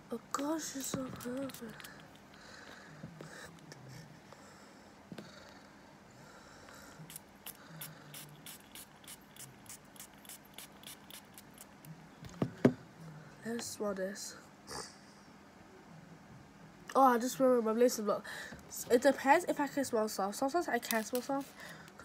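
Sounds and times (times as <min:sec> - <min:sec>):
spray bottle spritzes: 0:07.1 - 0:11.5.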